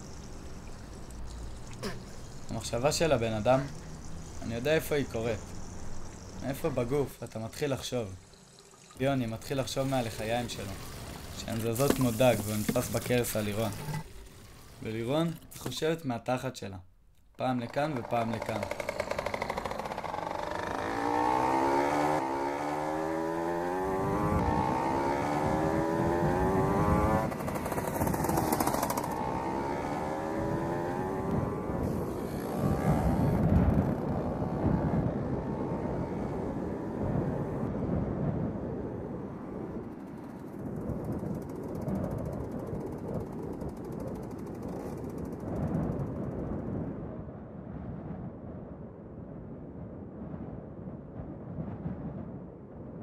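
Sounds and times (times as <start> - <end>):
small motorcycle engine accelerating: 0.0 - 15.5, 17.6 - 38.2, 39.1 - 46.2.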